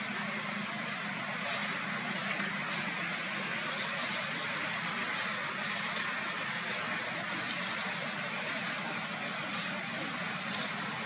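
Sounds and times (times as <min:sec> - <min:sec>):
continuous hiss: 0:00.0 - 0:11.0.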